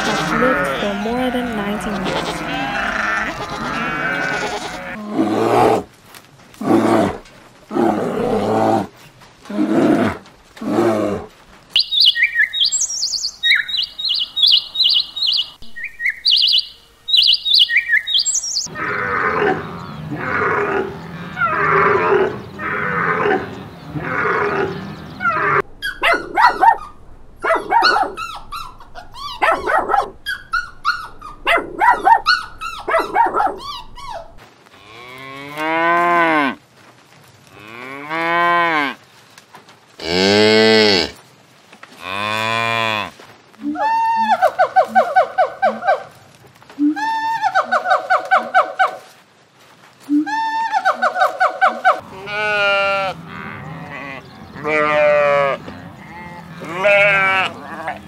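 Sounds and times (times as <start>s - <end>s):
animal calls: 0.0s - 5.8s, 11.8s - 34.4s, 43.0s - 49.1s, 50.1s - 58.0s
cow mooing: 0.0s - 5.8s, 52.0s - 58.0s.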